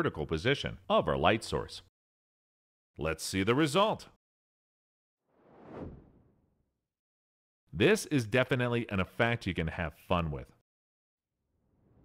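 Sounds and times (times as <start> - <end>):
whoosh sound effect: 5.3 - 6.4.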